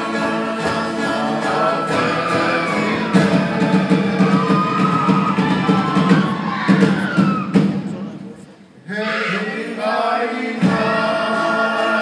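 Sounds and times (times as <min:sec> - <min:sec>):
group singing long notes: 0:00.0 - 0:06.6, 0:08.8 - 0:12.0.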